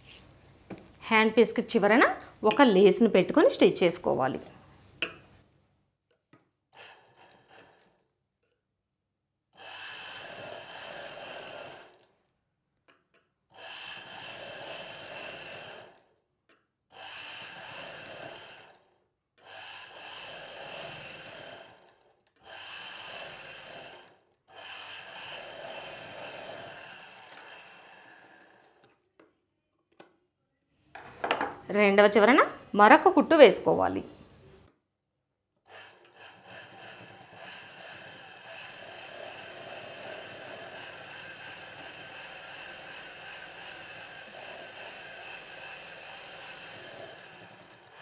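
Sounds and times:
sewing machine running: 6.7s - 8.1s, 9.5s - 12.2s, 13.5s - 16.2s, 16.9s - 29.1s, 35.6s - 48.0s.

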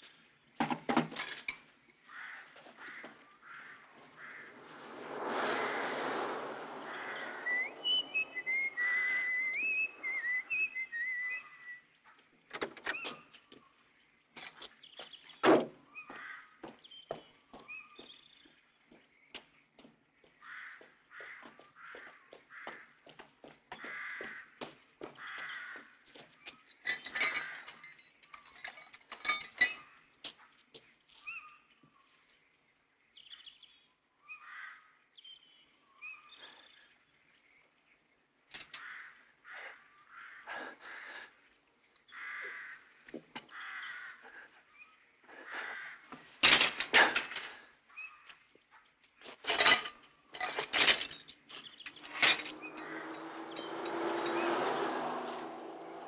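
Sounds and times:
outdoor knocks and clicks: 0.5s - 1.7s, 12.2s - 13.7s, 14.3s - 30.9s, 42.4s - 43.6s, 46.1s - 47.6s
faint bird calls: 2.0s - 13.8s, 14.4s - 18.6s, 19.2s - 28.6s, 33.2s - 37.9s, 38.6s - 46.4s
rushing noise: 4.2s - 10.6s.

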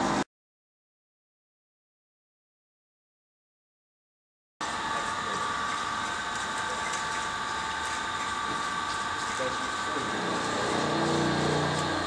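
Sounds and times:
mechanical hum: 0.0s - 0.2s, 4.6s - 12.0s.

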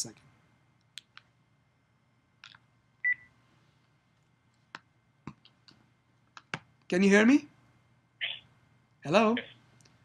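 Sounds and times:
faint steady line hum: 0.0s - 10.0s.

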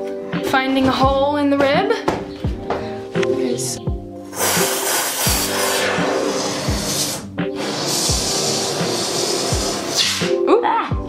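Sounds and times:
background music beat: 0.0s - 11.0s
spray foam can hissing: 4.3s - 10.4s.

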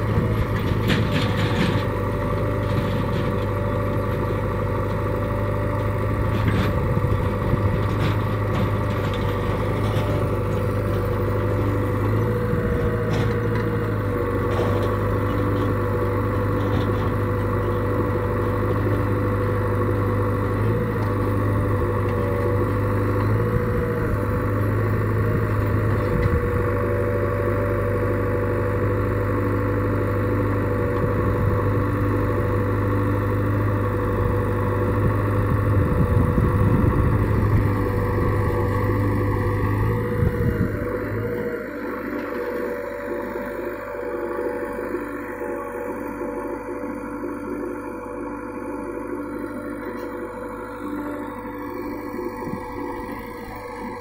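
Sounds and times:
backhoe diesel engine running: 0.0s - 54.0s.

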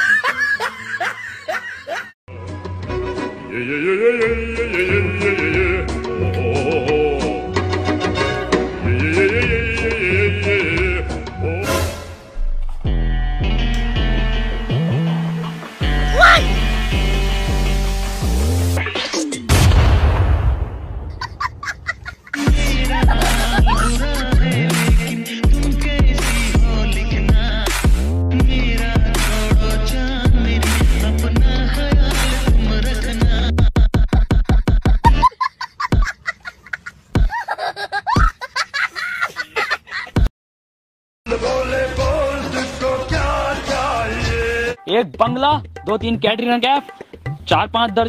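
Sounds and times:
person laughing: 0.0s - 2.2s, 21.1s - 24.3s, 33.5s - 40.3s
explosion sound effect: 19.5s - 21.6s.

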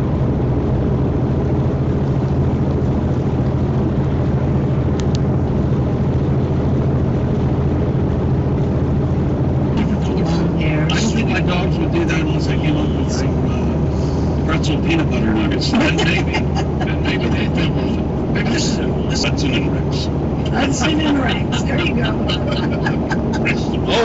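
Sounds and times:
road and engine drone in cab: 0.0s - 24.0s.

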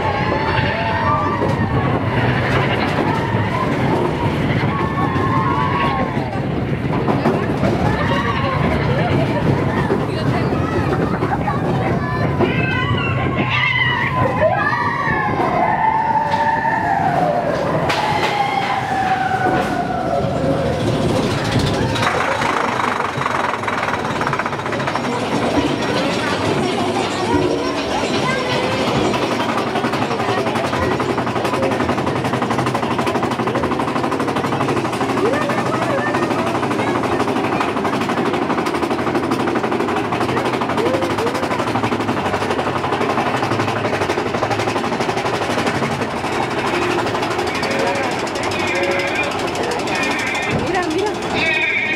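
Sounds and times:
roller coaster wheels rumbling: 0.0s - 51.9s
riders' voices: 18.8s - 51.9s.

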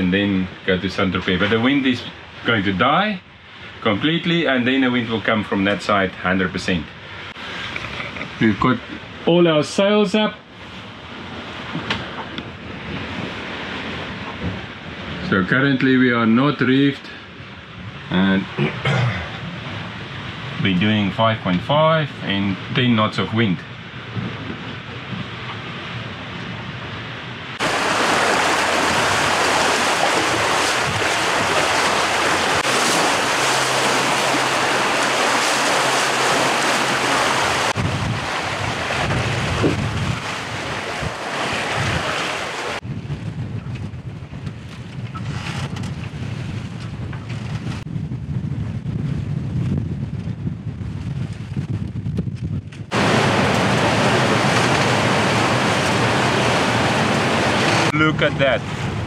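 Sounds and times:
water rushing along hull: 0.0s - 43.0s, 52.9s - 59.0s
wind buffeting microphone: 10.5s - 16.3s, 22.4s - 59.0s.

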